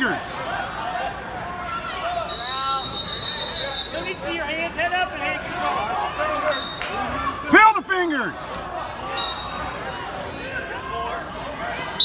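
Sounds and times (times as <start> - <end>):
people shouting in a large hall: 0.0 - 12.0.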